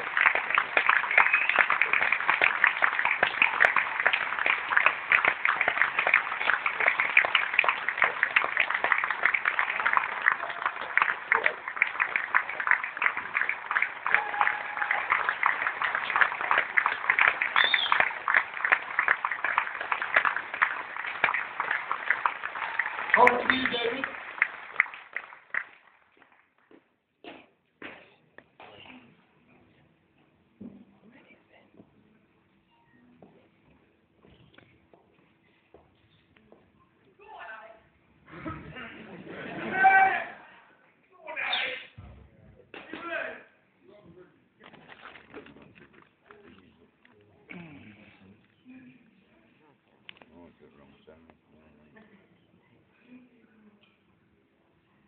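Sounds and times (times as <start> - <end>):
audience applauding: 0.0 - 26.6.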